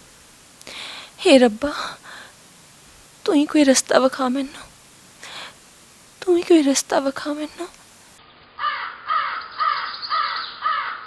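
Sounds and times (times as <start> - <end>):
crow cawing: 8.6 - 11.0.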